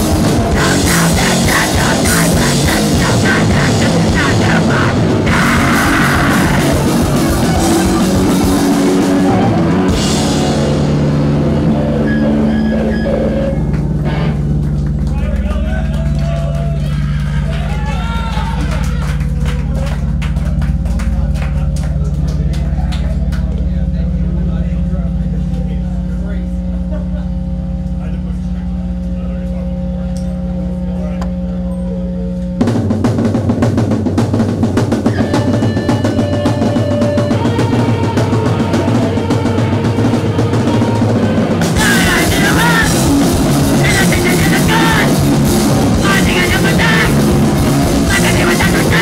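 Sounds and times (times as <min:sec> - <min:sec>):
fast drumming: 0:00.0 - 0:22.8, 0:32.6 - 0:49.0
live rock band: 0:00.0 - 0:23.5, 0:32.6 - 0:49.0
guitar and bass amplifier drone: 0:00.0 - 0:49.0
low sustained guitar drone: 0:00.1 - 0:15.1.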